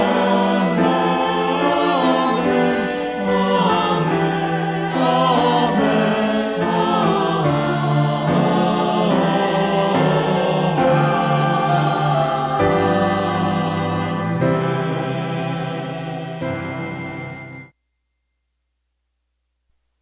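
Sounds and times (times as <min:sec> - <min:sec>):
choir singing worship song: 0:00.0 - 0:17.7.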